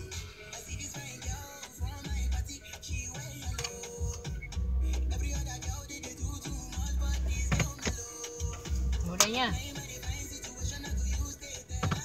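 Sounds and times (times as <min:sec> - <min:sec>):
pop music from car radio: 0:00.0 - 0:12.0.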